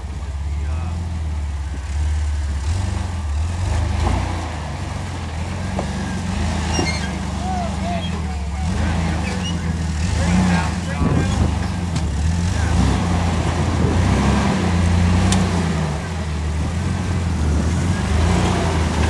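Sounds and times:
faint voices talking: 0:00.0 - 0:02.0, 0:04.2 - 0:19.0
engine running at low revs: 0:00.0 - 0:19.0.

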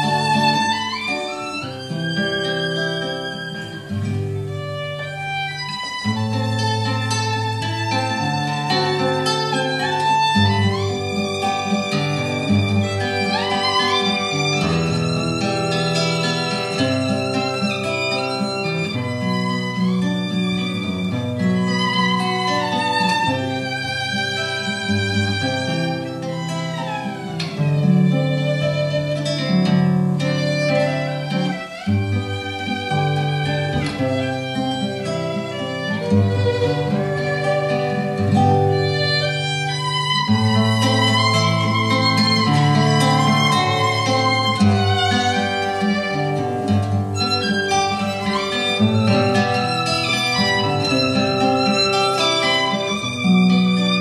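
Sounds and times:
guitar accompaniment: 0:00.0 - 0:54.0
violin melody: 0:00.0 - 0:54.0.

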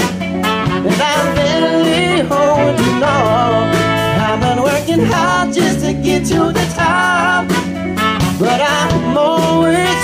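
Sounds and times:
soul band playing live: 0:00.0 - 0:10.0
person singing: 0:00.9 - 0:07.7, 0:08.4 - 0:10.0.

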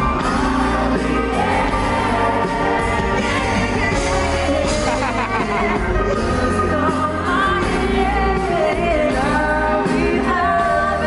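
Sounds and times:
band accompaniment: 0:00.0 - 0:11.0
woman and man singing duet: 0:00.0 - 0:11.0.

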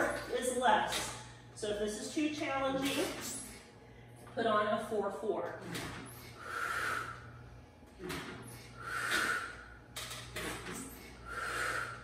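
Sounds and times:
woman forceful exhales: 0:08.8 - 0:09.6.

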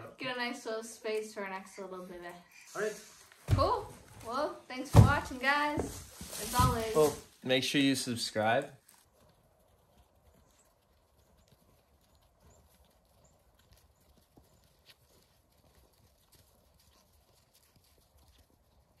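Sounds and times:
goat hooves on snow: 0:03.2 - 0:07.4, 0:08.3 - 0:19.0.

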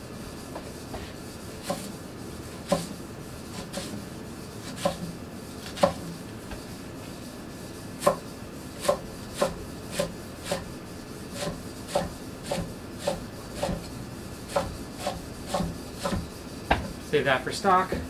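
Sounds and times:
knife chopping on wooden board: 0:01.6 - 0:01.9, 0:02.6 - 0:02.9, 0:04.7 - 0:06.0, 0:08.0 - 0:10.7, 0:11.4 - 0:13.9, 0:14.5 - 0:17.0.

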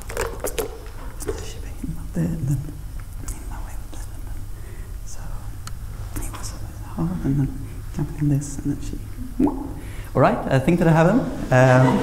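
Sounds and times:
low hum: 0:00.0 - 0:12.0
man whispering: 0:01.1 - 0:08.9.

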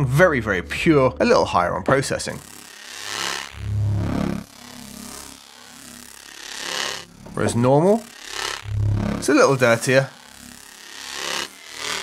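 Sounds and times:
hissy noisy synth texture: 0:02.0 - 0:12.0
synth bass note: 0:03.5 - 0:05.1, 0:07.1 - 0:07.8, 0:08.6 - 0:10.5.

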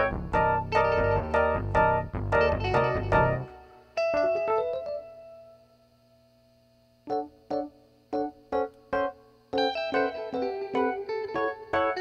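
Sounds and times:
low bass line: 0:00.0 - 0:03.5
electric piano chords: 0:00.0 - 0:05.4, 0:07.0 - 0:12.0.

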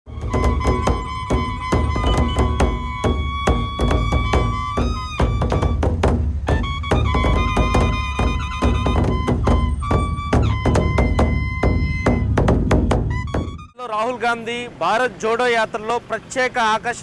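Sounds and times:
large drums beaten fast: 0:00.1 - 0:13.7
high-pitched held melody: 0:00.1 - 0:13.8.

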